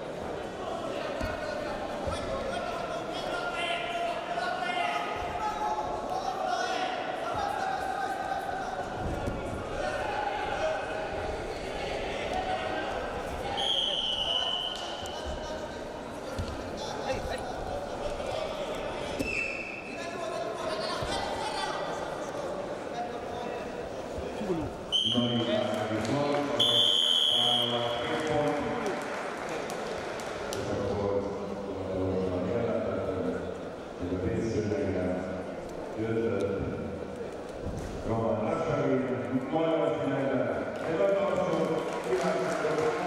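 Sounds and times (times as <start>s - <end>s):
voices calling out in hall: 0.0s - 43.0s.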